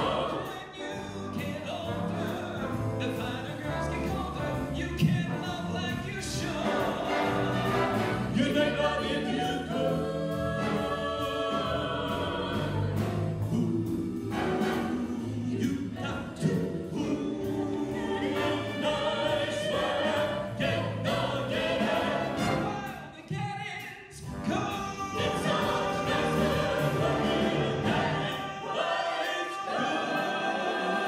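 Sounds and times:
jazz big band playing: 0.0s - 23.2s, 24.2s - 28.8s
vocalists singing together: 0.0s - 23.4s, 24.2s - 31.0s.

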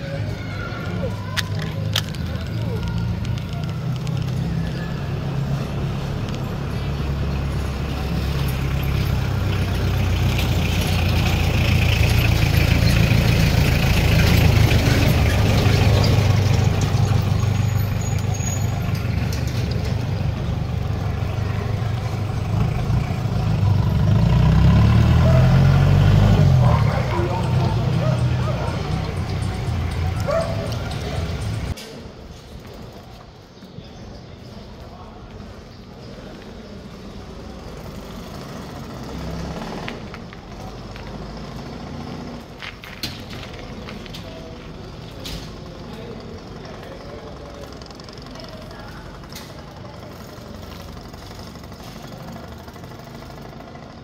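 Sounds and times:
indistinct voices: 0.0s - 41.2s.

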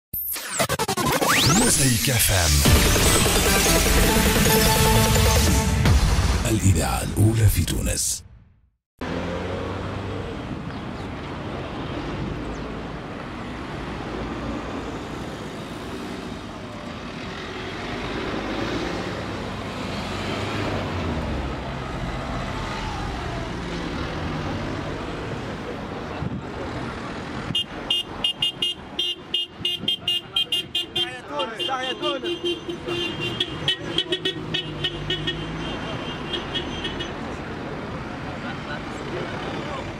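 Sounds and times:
cars driving past: 9.0s - 30.8s, 31.6s - 39.9s
car horns tooting: 27.5s - 37.2s.

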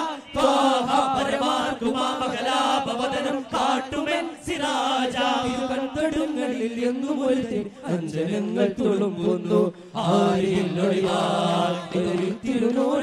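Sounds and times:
young men singing chant in unison: 0.0s - 13.0s.

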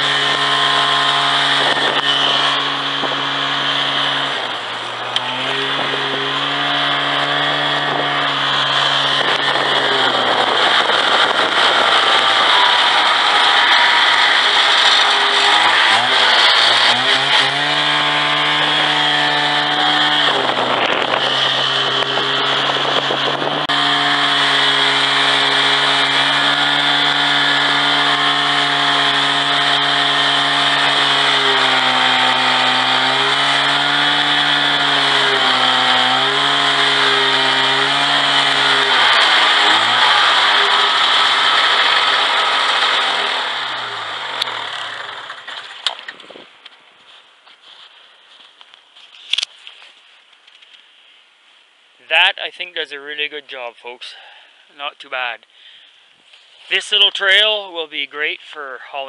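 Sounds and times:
rough noisy rush: 0.0s - 46.6s
snowmobile engine under load: 0.0s - 46.7s, 55.6s - 59.0s.

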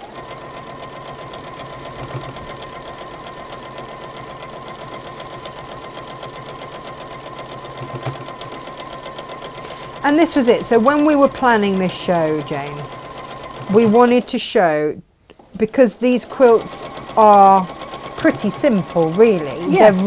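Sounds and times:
sewing machine stitching: 0.0s - 14.5s, 15.4s - 20.0s.

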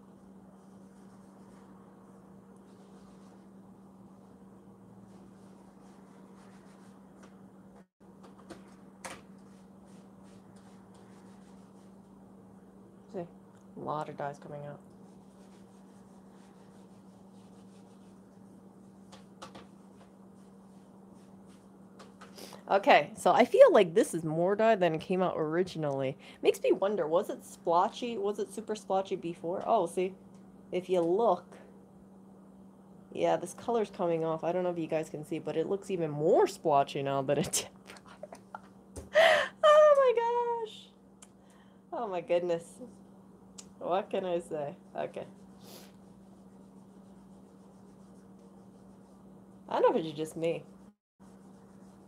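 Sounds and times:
steady low hum: 0.0s - 52.0s
cotton pad rubbing leather: 15.1s - 18.6s, 45.3s - 50.0s, 50.6s - 52.0s
woman gasping: 39.1s - 39.6s.

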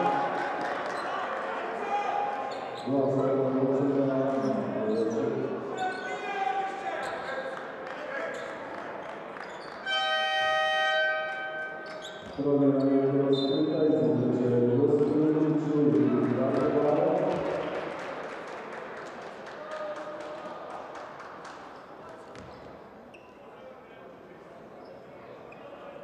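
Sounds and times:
horn tone: 9.8s - 12.0s.

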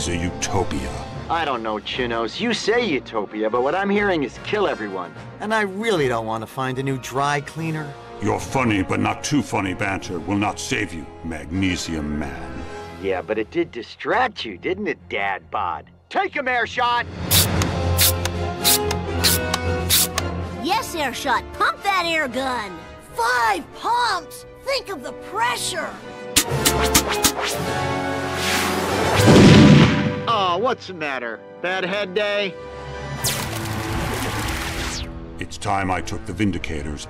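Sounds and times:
dramatic music: 17.0s - 37.0s
cartoon air gun pump strokes: 17.3s - 20.2s.

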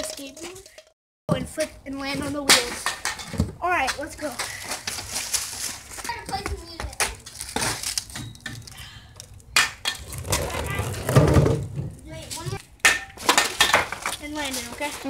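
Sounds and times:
skateboard clattering on concrete: 9.6s - 11.9s.

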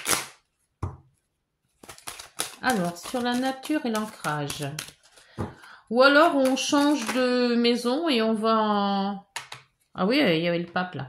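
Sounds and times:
cards scraping: 1.7s - 7.2s.

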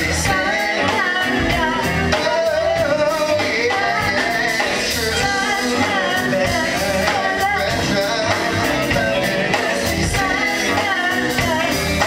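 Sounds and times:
bass: 0.0s - 12.0s
drums: 0.0s - 12.0s
funk band playing: 0.0s - 12.0s.

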